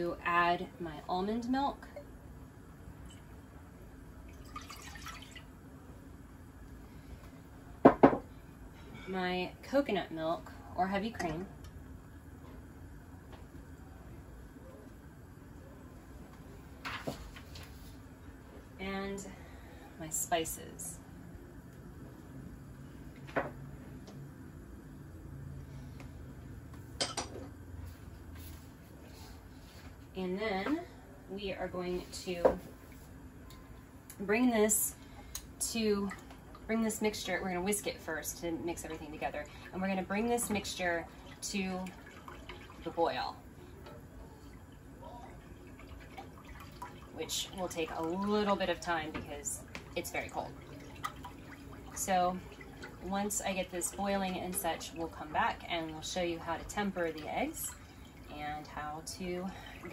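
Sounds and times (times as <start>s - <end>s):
low steady hum: 0.0s - 59.9s
milk trickling into saucepan: 4.3s - 5.5s.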